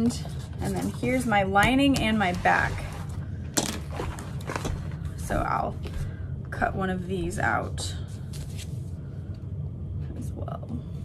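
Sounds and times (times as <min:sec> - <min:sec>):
steady low hum: 0:00.0 - 0:11.0
paper and fabric rustling: 0:07.6 - 0:09.0.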